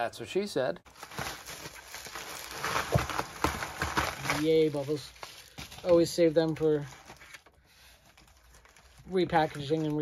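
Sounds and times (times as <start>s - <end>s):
bubble wrap crinkling: 0.9s - 10.0s.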